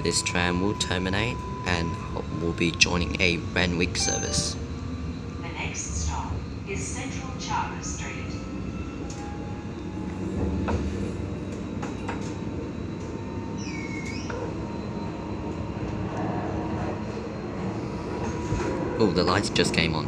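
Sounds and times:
tram rumbling on rails: 0.0s - 20.0s.

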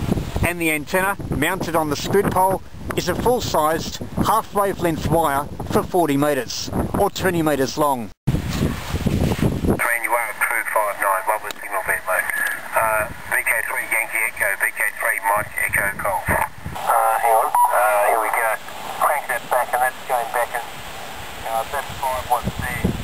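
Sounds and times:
faint hiss: 8.4s - 23.0s
narrow-band radio speech: 9.8s - 20.7s, 21.4s - 22.8s.

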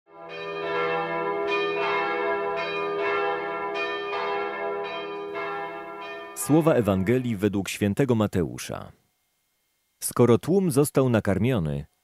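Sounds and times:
church bells ringing: 0.1s - 7.5s.

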